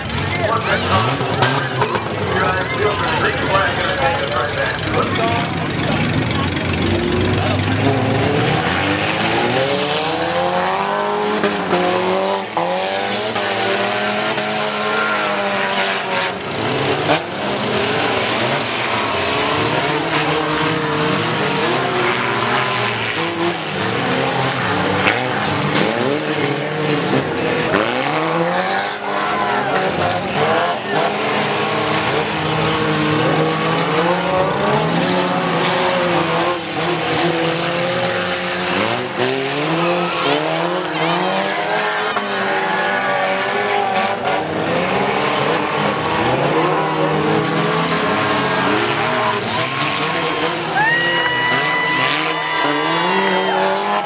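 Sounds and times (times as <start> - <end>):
car engines revving: 0.0 - 54.0.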